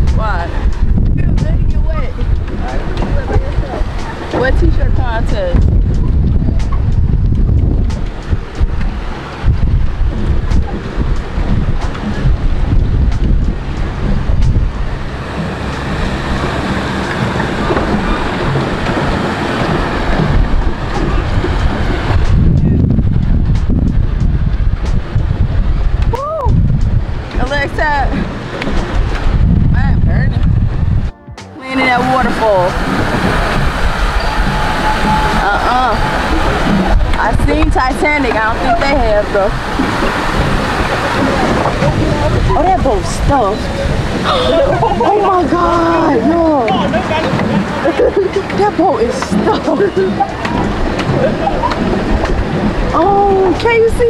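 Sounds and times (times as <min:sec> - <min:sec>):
water sloshing against hull: 0:00.0 - 0:54.0
wind buffeting microphone: 0:00.0 - 0:54.0.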